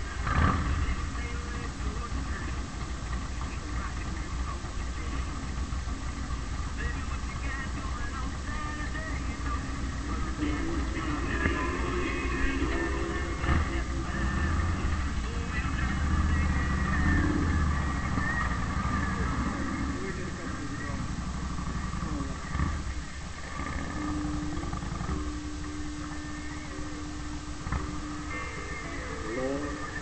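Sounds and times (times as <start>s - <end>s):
motorcycle engine rumble: 0.0s - 30.0s.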